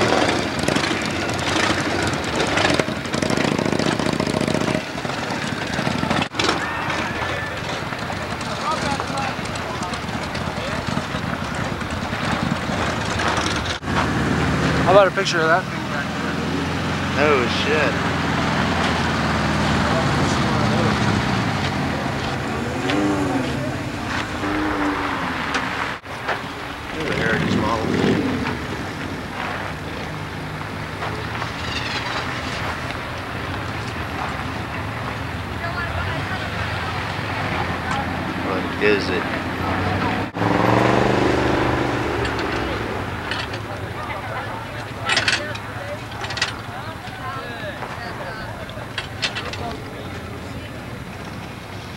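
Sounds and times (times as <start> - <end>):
motorcycle engine running: 0.0 - 47.8
crowd noise: 0.0 - 51.9
faint voices outdoors: 0.0 - 51.9
wind: 0.0 - 51.9.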